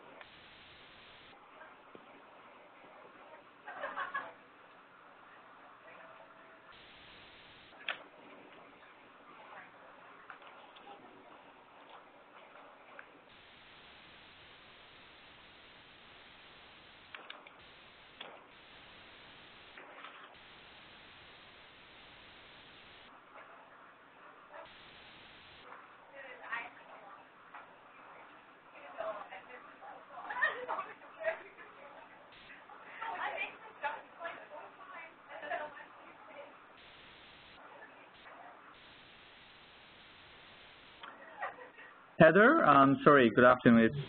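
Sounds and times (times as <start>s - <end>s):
faint phone line hiss: 0.0s - 1.4s, 6.7s - 7.8s, 13.3s - 19.8s, 20.4s - 23.1s, 24.7s - 25.7s, 36.8s - 37.6s, 38.2s - 41.1s.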